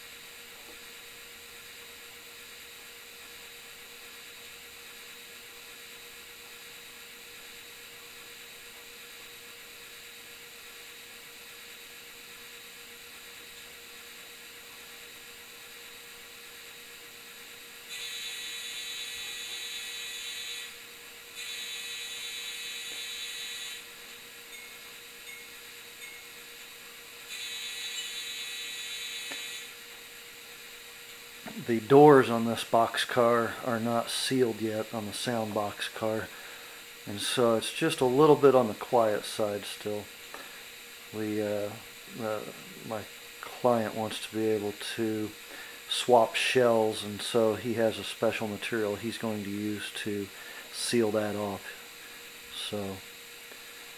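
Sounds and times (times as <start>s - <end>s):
constant low hum: 0.0s - 53.9s
model train horn blasts: 17.9s - 20.8s, 27.3s - 29.7s.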